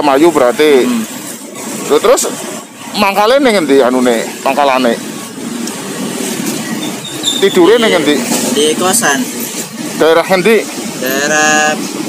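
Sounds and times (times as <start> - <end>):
passing street traffic: 0.0 - 12.0.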